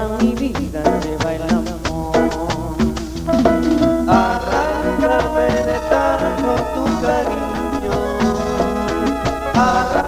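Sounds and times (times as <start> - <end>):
keyboards: 0.0 - 10.0
live band playing: 0.0 - 10.0
people singing: 0.0 - 10.0
steady drum beat: 0.0 - 10.0.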